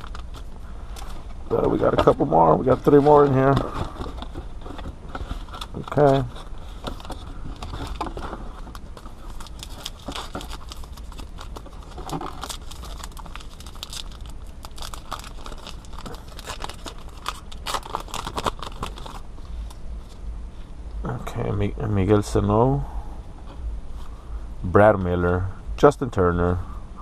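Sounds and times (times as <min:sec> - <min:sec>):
wrapper crinkling and tearing: 0:00.0 - 0:00.5, 0:05.4 - 0:19.2.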